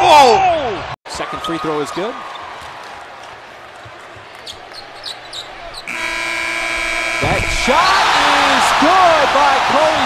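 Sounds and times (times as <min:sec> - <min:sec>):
arena crowd noise: 0:00.0 - 0:06.0, 0:06.8 - 0:10.0
buzzer horn: 0:05.8 - 0:08.5.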